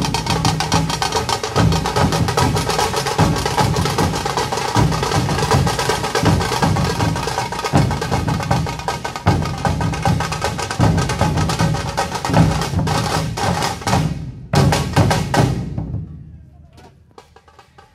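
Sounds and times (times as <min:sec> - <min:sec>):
barrel drums deep beats: 0:00.0 - 0:16.4.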